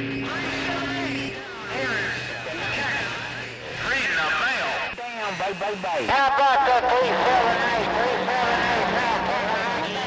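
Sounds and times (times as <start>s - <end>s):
garbled radio voices: 0.0s - 10.0s
radio static: 0.0s - 10.0s
steady low hum: 0.0s - 10.0s.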